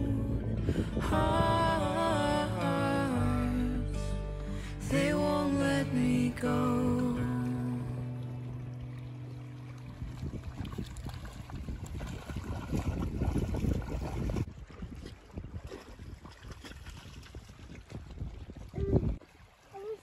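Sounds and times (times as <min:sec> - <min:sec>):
wind buffeting microphone: 0:00.0 - 0:02.6, 0:09.9 - 0:19.2
water lapping at shore: 0:00.0 - 0:20.0.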